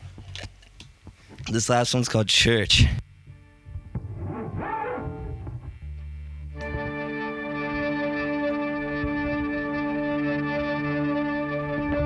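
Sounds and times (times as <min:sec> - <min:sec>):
sustained band chord with low bass: 0:03.0 - 0:12.0.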